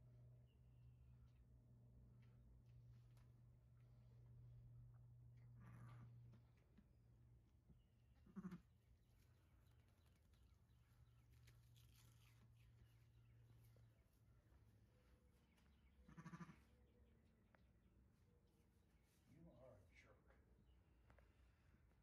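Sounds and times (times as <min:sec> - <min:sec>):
faint low hum: 0:00.0 - 0:22.0
sheep bleating: 0:08.2 - 0:08.7, 0:16.1 - 0:16.7.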